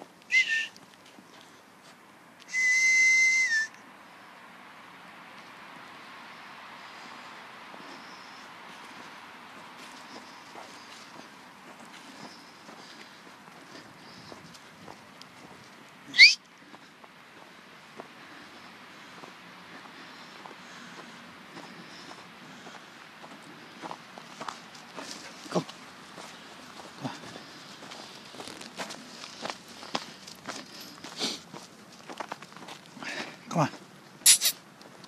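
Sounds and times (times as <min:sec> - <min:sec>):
whistle rising in pitch: 0:00.3 - 0:00.7, 0:02.5 - 0:03.8, 0:16.1 - 0:16.4
footsteps crunching through snow: 0:08.7 - 0:15.8, 0:21.5 - 0:33.4.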